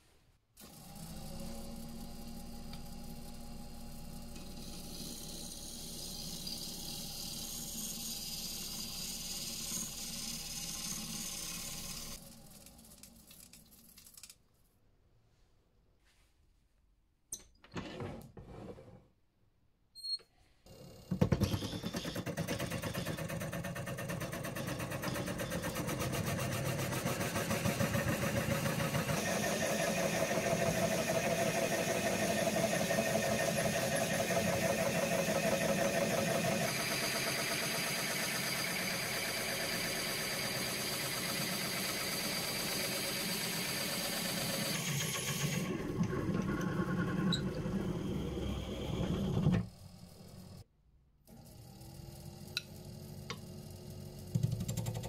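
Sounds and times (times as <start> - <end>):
wood lathe running: 22.3 - 50.2.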